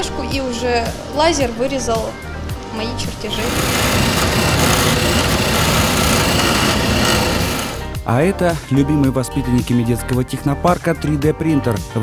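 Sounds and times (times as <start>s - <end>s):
printer stepper motors whirring: 3.3s - 7.8s.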